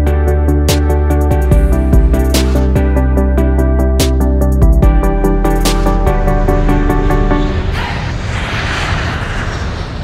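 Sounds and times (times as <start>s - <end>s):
airplane fly-by whoosh: 5.7s - 10.0s.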